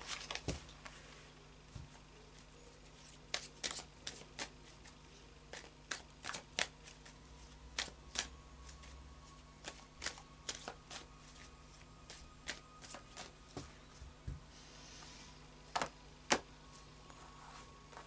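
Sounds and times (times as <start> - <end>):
cards being shuffled by hand: 0.0 - 1.0, 1.7 - 13.8.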